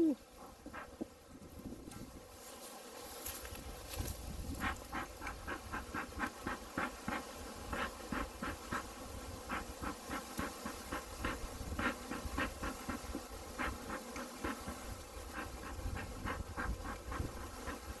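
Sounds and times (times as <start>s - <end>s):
bellows hissing puffs of air: 3.9s - 18.0s.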